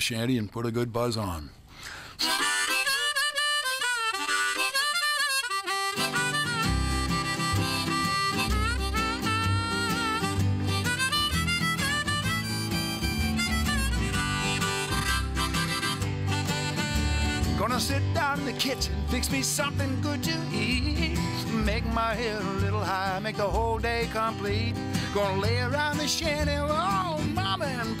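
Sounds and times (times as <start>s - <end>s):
acoustic guitar: 1.8s - 28.0s
harmonica: 1.8s - 28.0s
upright bass: 6.1s - 28.0s.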